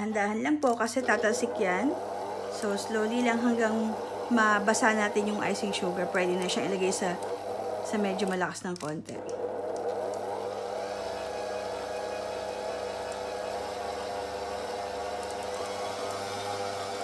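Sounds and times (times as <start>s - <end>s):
stand mixer motor whirring: 0.0s - 17.0s.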